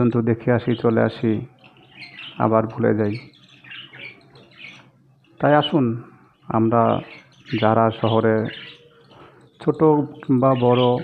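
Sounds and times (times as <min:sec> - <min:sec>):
man speaking: 0:00.0 - 0:01.6, 0:02.4 - 0:03.3, 0:05.4 - 0:08.6, 0:09.6 - 0:11.0
budgerigars chirping: 0:00.7 - 0:11.0.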